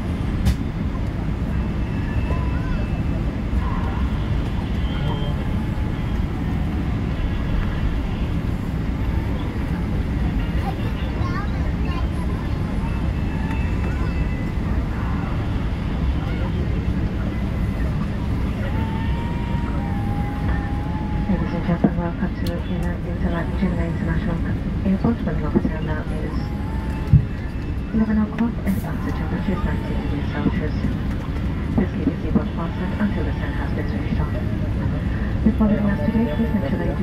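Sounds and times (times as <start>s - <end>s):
airplane cabin low rumble: 0.0s - 37.0s
faint passenger voices: 0.0s - 37.0s.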